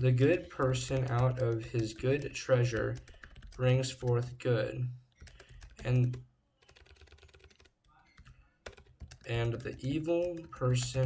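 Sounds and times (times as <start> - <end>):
typing on computer keyboard: 0.2 - 4.4, 5.1 - 11.0.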